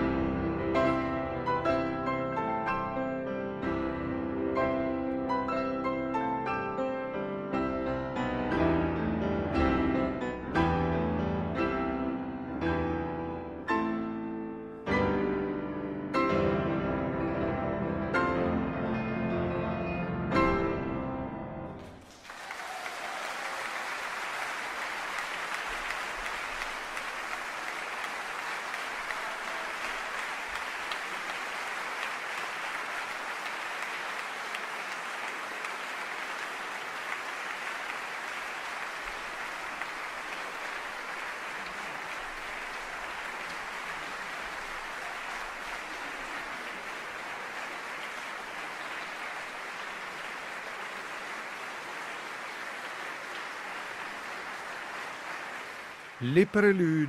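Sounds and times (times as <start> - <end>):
audience applauding: 21.8 - 57.0.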